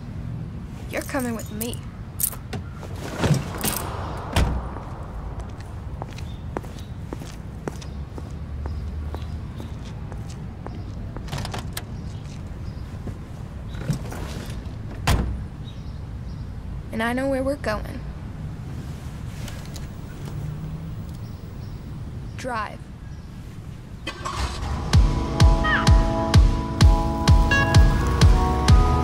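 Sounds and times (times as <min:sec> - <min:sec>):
low car rumble: 0:00.0 - 0:17.0, 0:17.8 - 0:22.4
car doors thumping shut: 0:02.5 - 0:04.6, 0:15.0 - 0:15.4
rustling: 0:18.7 - 0:20.4.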